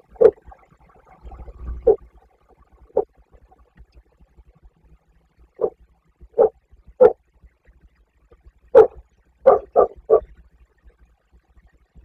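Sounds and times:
dog barking: 6.4s - 7.2s, 8.8s - 10.2s.

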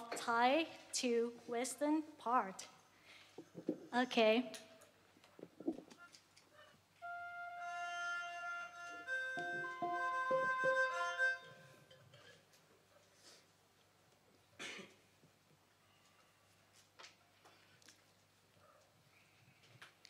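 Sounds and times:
flute-like sustained notes: 7.0s - 11.9s.

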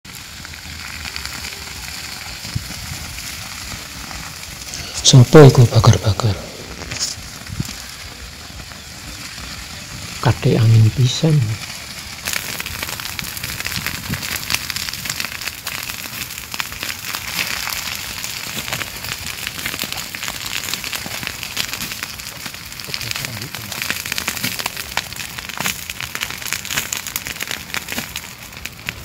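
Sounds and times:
grass fire crackling: 0.1s - 29.0s.

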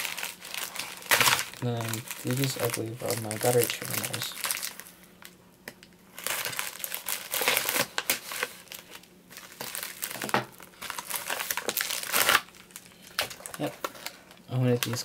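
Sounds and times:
plastic mailer crinkling: 0.0s - 15.0s.

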